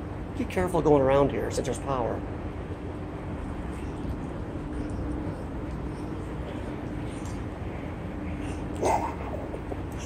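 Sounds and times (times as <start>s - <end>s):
faint even hum: 0.0s - 10.0s.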